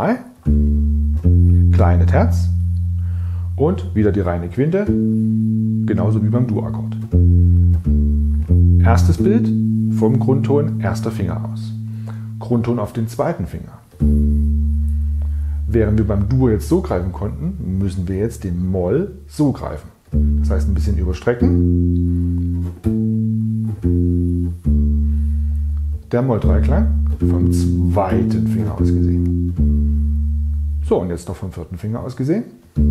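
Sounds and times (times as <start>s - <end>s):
bass guitar plucked arpeggio: 0.0s - 31.8s.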